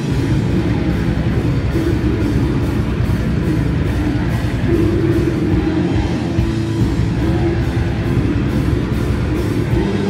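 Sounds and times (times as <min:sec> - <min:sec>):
distorted electric guitars: 0:00.0 - 0:10.0
drums beating steadily: 0:00.0 - 0:10.0.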